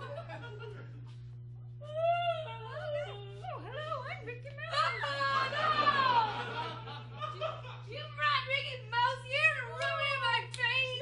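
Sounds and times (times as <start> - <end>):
audience laughter: 0.0 - 1.2, 4.8 - 7.9
low electrical hum: 0.0 - 11.0.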